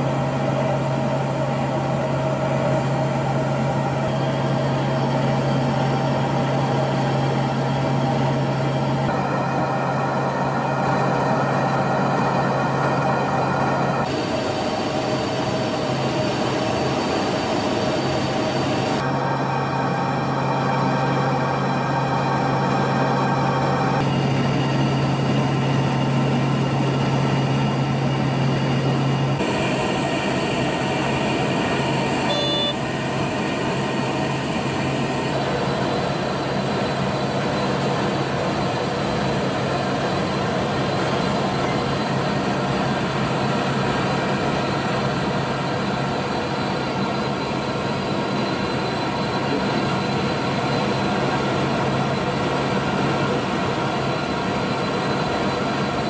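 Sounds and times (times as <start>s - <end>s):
turboprop engines droning: 0.0s - 56.0s.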